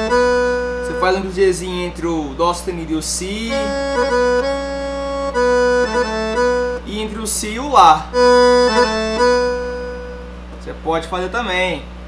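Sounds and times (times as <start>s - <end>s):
accordion held treble notes: 0.0s - 10.5s.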